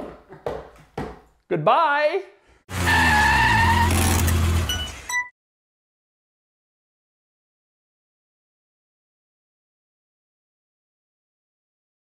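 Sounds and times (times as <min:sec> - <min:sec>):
high squealing tone: 0:02.8 - 0:05.2.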